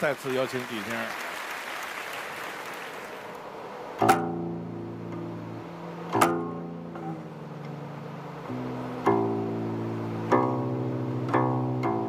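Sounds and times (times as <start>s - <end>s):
applause: 0.0s - 3.4s
plucked zither notes: 4.0s - 12.0s.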